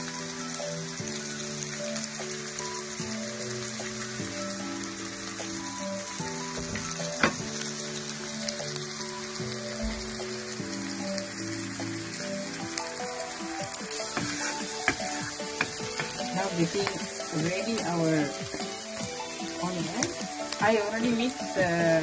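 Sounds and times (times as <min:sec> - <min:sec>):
background music sustained notes: 0:00.0 - 0:22.0
food sizzling in oil: 0:00.0 - 0:22.0.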